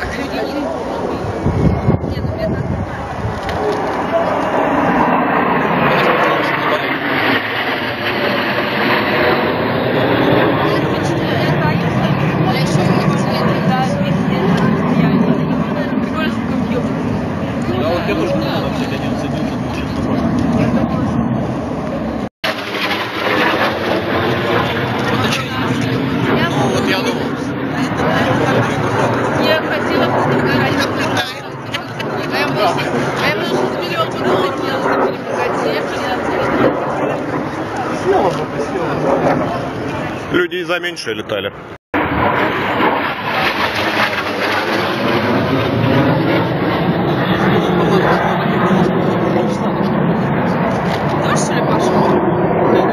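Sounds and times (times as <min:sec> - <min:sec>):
indistinct voices: 0:00.0 - 0:40.6
jet aircraft passing overhead: 0:00.0 - 0:52.9.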